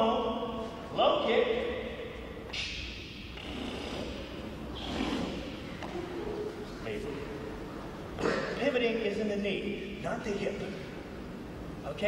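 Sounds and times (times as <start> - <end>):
sharp hissing exhalations: 4.8 - 5.6.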